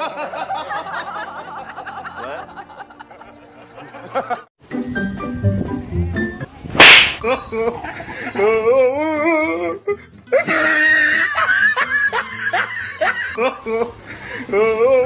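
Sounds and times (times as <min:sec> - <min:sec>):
laughter: 0:00.0 - 0:04.5, 0:07.3 - 0:08.9, 0:09.6 - 0:15.0
background music: 0:00.8 - 0:15.0
sharp whip-like crack: 0:06.7 - 0:07.3.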